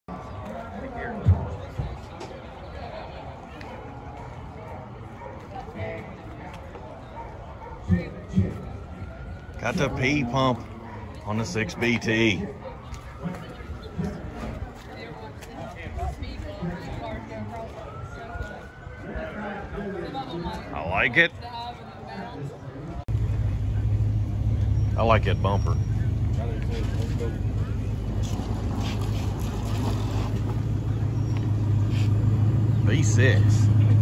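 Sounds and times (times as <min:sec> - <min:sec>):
faint voices: 0:00.1 - 0:34.0
people talking: 0:09.6 - 0:22.7, 0:25.0 - 0:28.3, 0:32.8 - 0:33.7
vehicle engine idling: 0:23.1 - 0:29.5
low outdoor rumble: 0:23.1 - 0:34.0.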